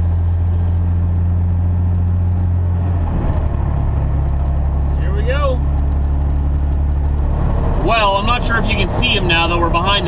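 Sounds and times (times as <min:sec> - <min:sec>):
road noise: 0:00.0 - 0:10.0
truck diesel engine drone: 0:00.0 - 0:10.0.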